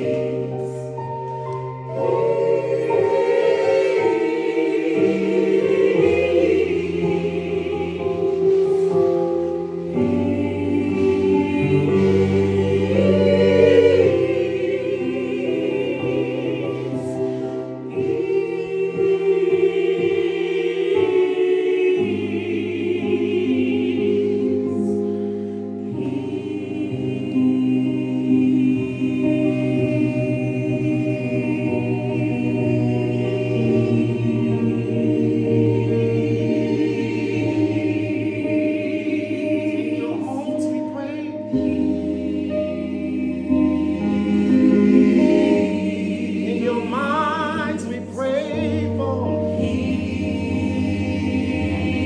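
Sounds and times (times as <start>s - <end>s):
choir singing in harmony: 0.0s - 52.0s
keyboard accompaniment: 0.0s - 52.0s.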